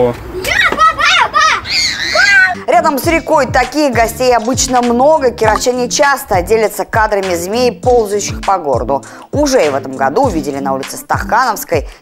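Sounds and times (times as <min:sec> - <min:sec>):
children calling out excitedly: 0:00.4 - 0:03.2.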